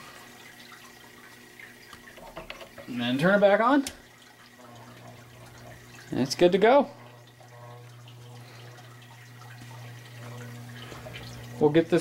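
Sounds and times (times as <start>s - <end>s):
motorized drying wheel humming: 0.0s - 12.0s.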